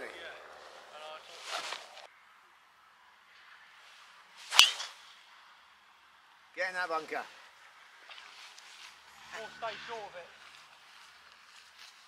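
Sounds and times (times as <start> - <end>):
golf club swing swish: 4.4 - 5.0.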